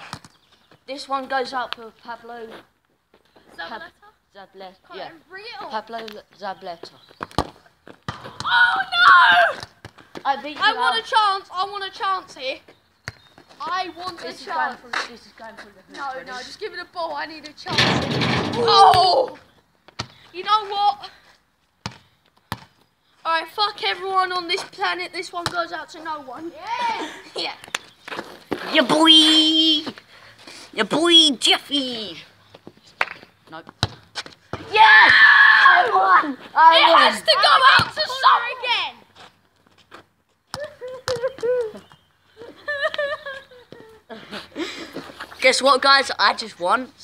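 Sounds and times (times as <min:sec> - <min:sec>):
boy shouting: 0:08.3 - 0:12.6, 0:18.5 - 0:19.5, 0:20.4 - 0:21.2, 0:23.3 - 0:27.5, 0:28.7 - 0:29.9, 0:30.8 - 0:32.3, 0:34.6 - 0:39.0
ball bouncing on hard court: 0:21.8 - 0:22.8, 0:25.4 - 0:25.8, 0:33.0 - 0:34.7, 0:37.7 - 0:38.0.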